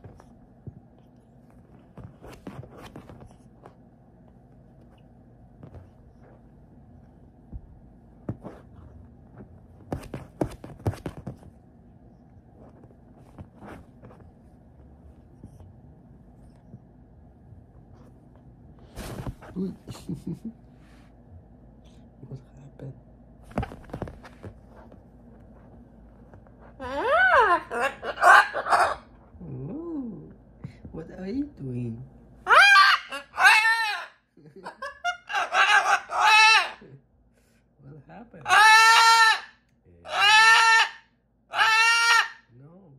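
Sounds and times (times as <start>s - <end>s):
cockatoo call: 26.8s - 29.1s, 32.5s - 36.9s, 38.4s - 42.5s.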